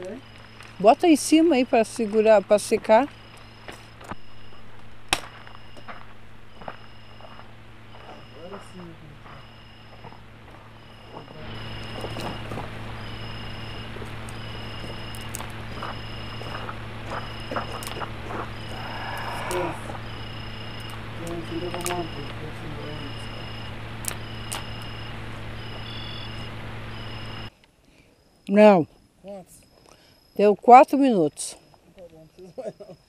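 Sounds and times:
sticks snapping on campfire: 15.1s - 15.6s, 17.7s - 18.1s, 20.8s - 22.0s, 24.0s - 24.7s.

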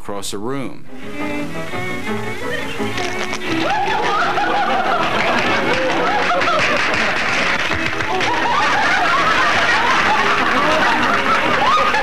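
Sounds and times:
string music: 0.7s - 12.0s
group of people laughing: 2.4s - 12.0s.

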